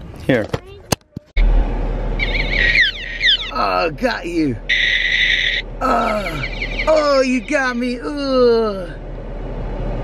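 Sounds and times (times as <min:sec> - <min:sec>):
low car cabin rumble: 0:00.0 - 0:10.0.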